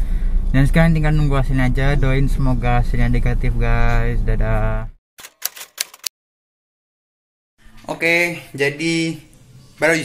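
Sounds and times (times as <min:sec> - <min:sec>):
rapid sharp clicks: 0:05.2 - 0:06.1.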